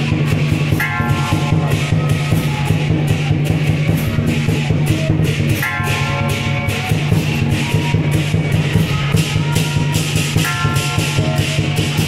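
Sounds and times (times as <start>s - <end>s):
crashing percussion strikes: 0.0s - 12.0s.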